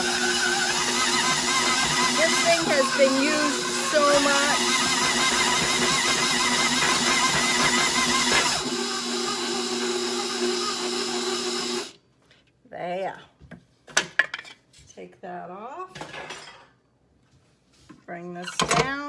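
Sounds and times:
stand mixer running: 0:00.0 - 0:12.0.

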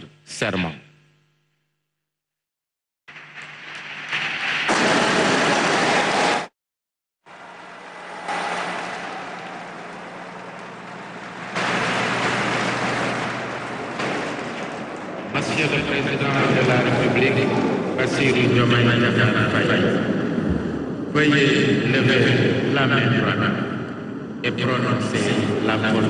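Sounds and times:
audience applauding: 0:03.8 - 0:06.5, 0:07.3 - 0:15.6.

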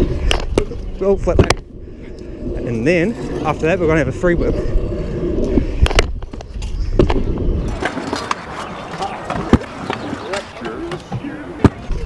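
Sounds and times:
scooter rolling on concrete: 0:00.0 - 0:12.0.

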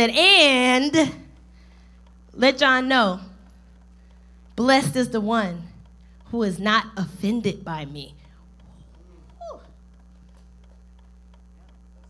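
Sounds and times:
low electrical hum: 0:00.0 - 0:12.0
woman exclaiming: 0:09.4 - 0:09.8.

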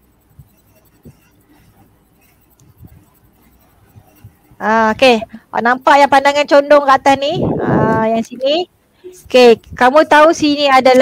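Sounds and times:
microphone handling scratching: 0:00.2 - 0:08.4.

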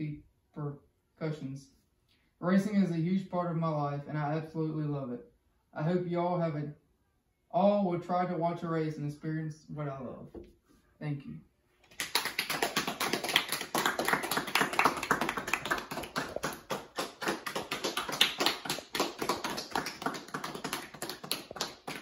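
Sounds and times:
people clapping: 0:11.8 - 0:22.0.

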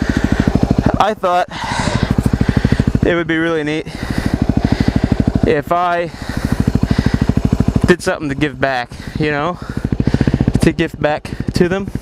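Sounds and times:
dirt bike engine running: 0:00.0 - 0:12.0.

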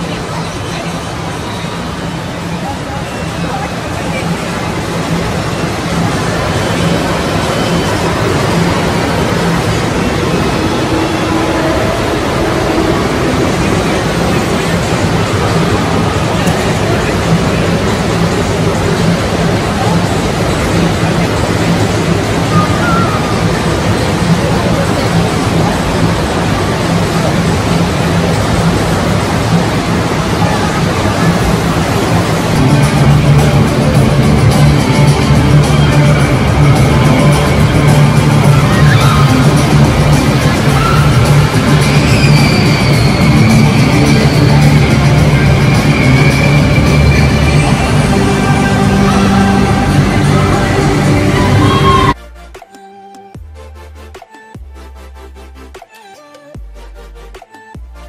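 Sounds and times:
moving water: 0:00.0 - 0:52.2
crowd chatter: 0:00.0 - 0:53.4
faint music: 0:00.0 - 0:58.0.

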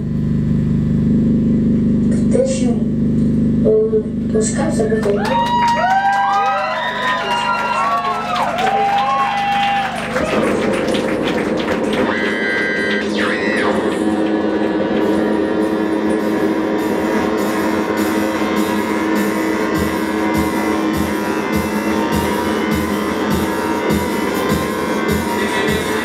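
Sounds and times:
droning wall of sound: 0:00.0 - 0:26.0
high ticking pulse: 0:08.6 - 0:26.0
wavering electronic tones: 0:10.4 - 0:26.0.

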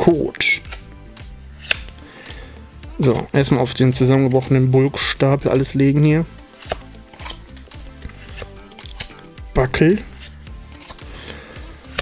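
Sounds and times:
soft background music: 0:00.0 - 0:12.0
trading cards rustling: 0:00.3 - 0:02.1, 0:05.4 - 0:12.0.

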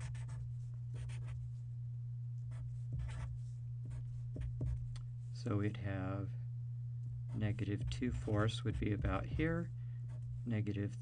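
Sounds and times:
marker drawing on paper: 0:00.0 - 0:01.6, 0:02.5 - 0:04.8
steady low hum: 0:00.0 - 0:11.0.

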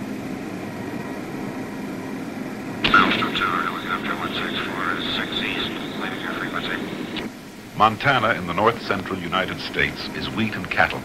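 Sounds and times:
helicopter engine and rotor: 0:00.0 - 0:07.3
man narrating: 0:02.8 - 0:11.0.

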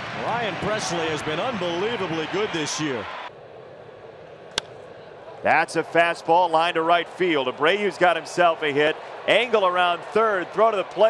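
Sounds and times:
ballpark crowd ambience: 0:00.0 - 0:11.0
bat hitting a baseball: 0:04.5 - 0:04.8.

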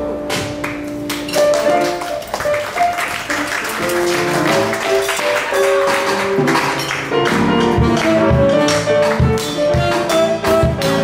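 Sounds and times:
piano and guitar melody: 0:00.0 - 0:11.0
latin jazz band playing: 0:00.1 - 0:11.0.

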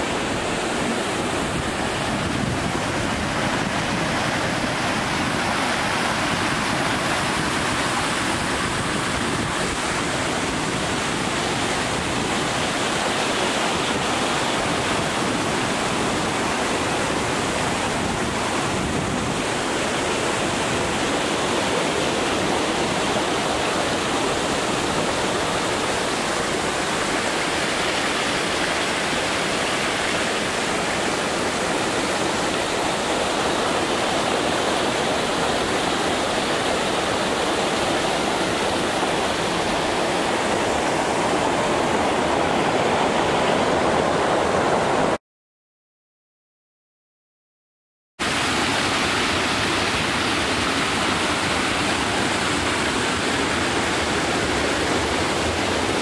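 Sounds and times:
stream water rushing over weir: 0:00.0 - 0:45.2, 0:48.2 - 0:56.0.

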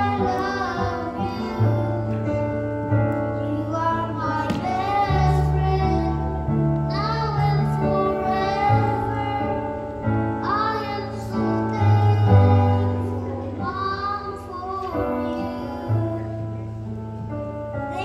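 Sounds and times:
boy singing into a microphone: 0:00.0 - 0:16.9, 0:17.7 - 0:18.0.

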